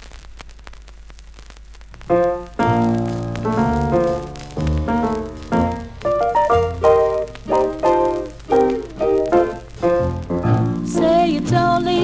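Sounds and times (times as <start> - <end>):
record crackles and pops: 0.0 - 12.0
record surface hiss: 0.0 - 12.0.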